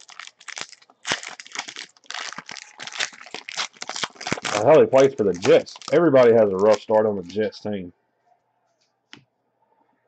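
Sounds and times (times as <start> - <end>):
plastic wrapping crinkling: 0.0 - 7.6.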